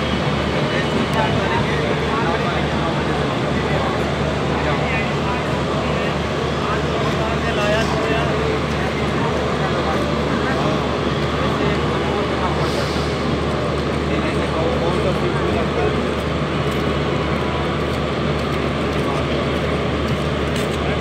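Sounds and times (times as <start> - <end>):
train wheels rattling on rails: 0.0 - 21.0.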